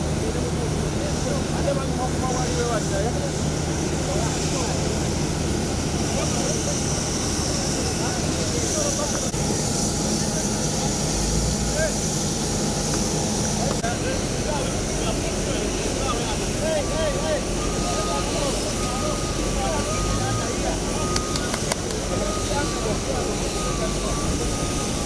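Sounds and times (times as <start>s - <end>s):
jet airliner engine rumble and whine: 0.0s - 25.0s
people chatting and calling: 0.0s - 25.0s.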